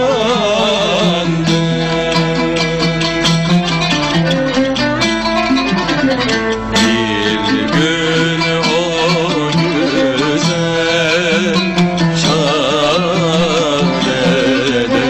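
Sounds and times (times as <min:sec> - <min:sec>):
oud: 0:00.0 - 0:15.0
plucked strings: 0:00.0 - 0:15.0
violin: 0:00.0 - 0:15.0.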